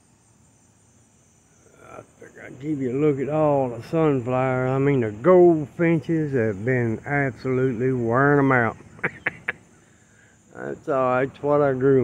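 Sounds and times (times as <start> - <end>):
insect chorus trilling: 0.0 - 12.0
man talking: 1.7 - 9.4, 10.5 - 12.0.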